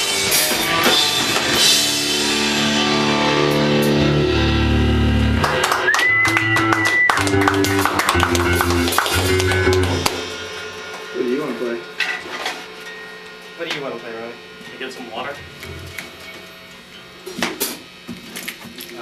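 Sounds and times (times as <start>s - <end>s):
live rock band playing: 0.0s - 18.1s
room hum: 1.2s - 19.0s.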